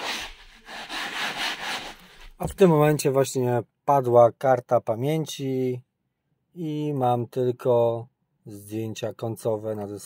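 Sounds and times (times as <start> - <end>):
scrub brush on fabric: 0.0 - 2.4.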